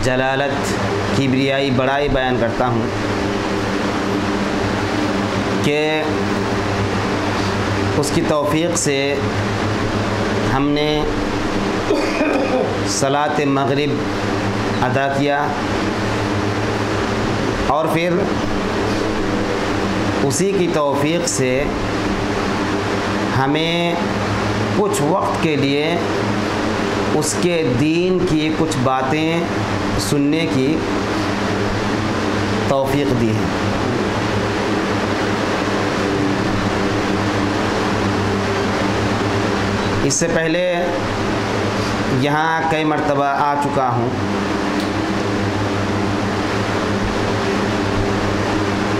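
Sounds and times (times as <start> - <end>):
man speaking: 0.0 - 3.0, 12.0 - 14.1, 32.7 - 34.2, 40.0 - 41.0, 42.1 - 44.2
steady low hum: 0.0 - 48.9.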